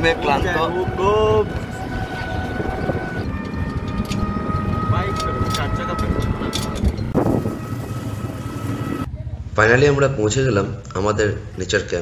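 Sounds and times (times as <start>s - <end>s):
vehicle road and wind noise: 0.0s - 12.0s.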